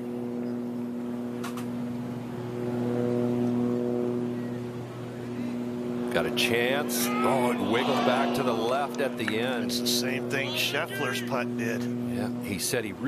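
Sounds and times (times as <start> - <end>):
low droning hum: 0.0 - 13.0.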